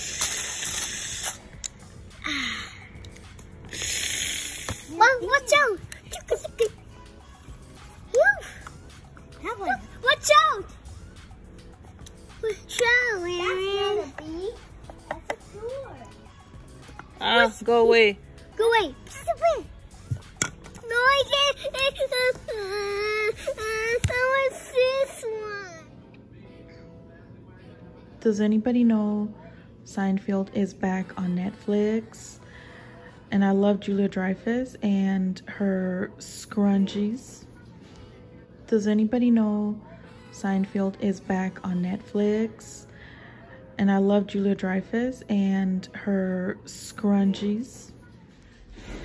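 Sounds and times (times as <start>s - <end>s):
high hiss bursts: 0.0s - 1.5s, 3.7s - 4.9s
toddler vocalizing sing-song: 20.8s - 25.9s.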